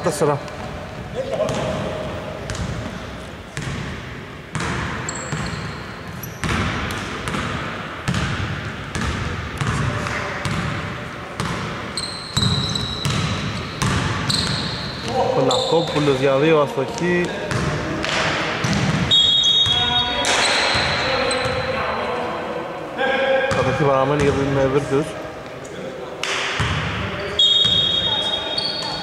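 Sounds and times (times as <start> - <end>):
sneakers squeaking on floor: 0.0 - 10.7, 11.4 - 22.0, 26.6 - 29.0.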